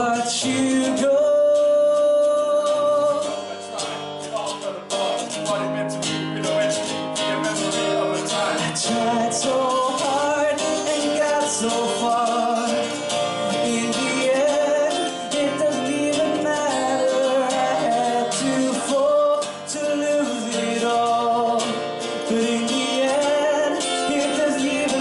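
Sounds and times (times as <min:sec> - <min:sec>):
acoustic guitar: 0:00.0 - 0:25.0
men singing: 0:00.0 - 0:25.0.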